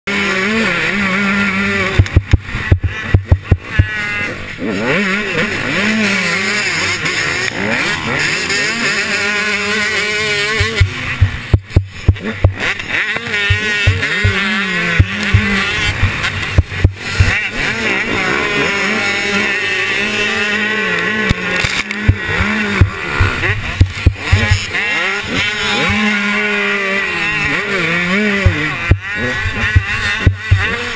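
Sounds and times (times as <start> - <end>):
motocross bike engine revving high: 0.1 - 30.9.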